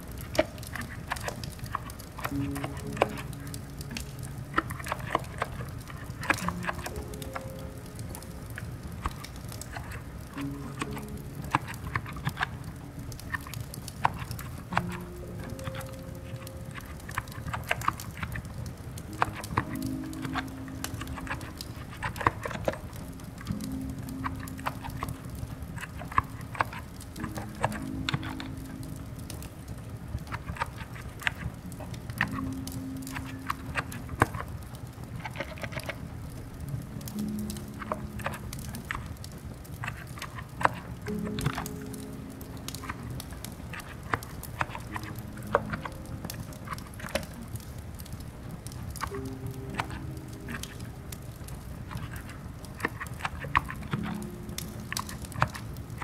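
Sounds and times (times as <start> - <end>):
quiet keyboard typing: 0.0 - 56.0
rain hiss: 0.0 - 56.0
soft background music: 0.0 - 56.0.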